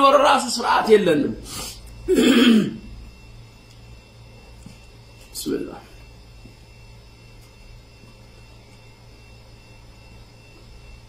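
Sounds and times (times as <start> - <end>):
background hiss: 0.0 - 10.7
faint thin steady tone: 0.0 - 11.0
low electrical hum: 0.0 - 11.0.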